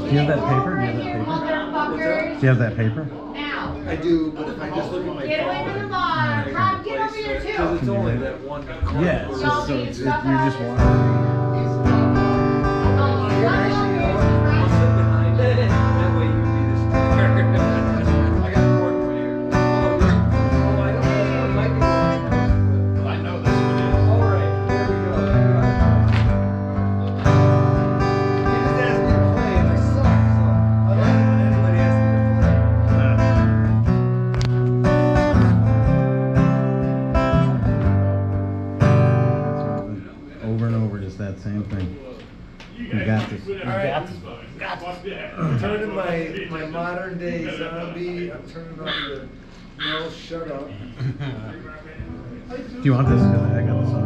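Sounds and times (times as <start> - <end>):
acoustic guitar strumming chords: 0.0 - 4.2, 10.4 - 39.9, 52.8 - 54.0
steady bass: 10.7 - 39.9, 52.9 - 54.0.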